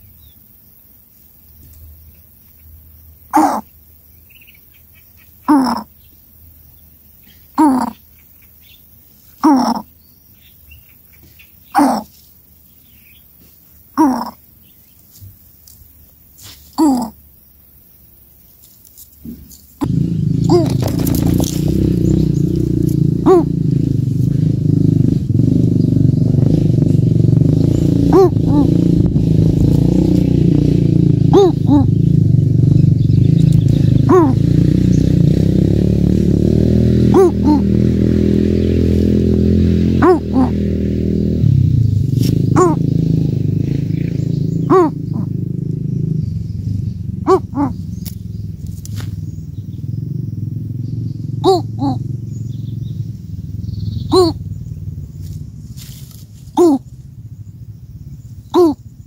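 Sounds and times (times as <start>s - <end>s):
continuous low rumble: 0.0s - 59.0s
coucal calling: 2.5s - 6.2s, 7.2s - 12.2s, 13.9s - 14.9s, 16.8s - 17.3s, 19.8s - 23.8s, 27.5s - 30.5s, 31.2s - 32.3s, 32.9s - 35.1s, 37.1s - 37.8s, 40.0s - 40.7s, 42.3s - 48.6s, 50.9s - 55.0s, 56.5s - 57.1s, 58.2s - 59.0s.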